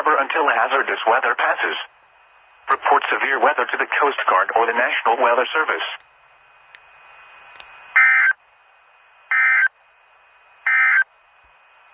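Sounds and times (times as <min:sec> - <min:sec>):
faint radio hiss: 0:00.0 - 0:11.9
data tone bursts: 0:08.0 - 0:08.4, 0:09.3 - 0:09.7, 0:10.7 - 0:11.1.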